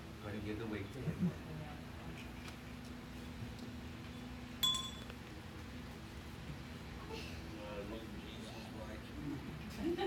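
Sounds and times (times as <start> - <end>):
low room hum: 0.0 - 10.0
metallic clink: 4.6 - 5.1.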